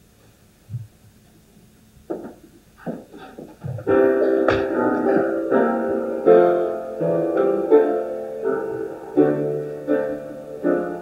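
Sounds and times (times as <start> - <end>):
keyboard chords ringing: 3.8 - 11.0.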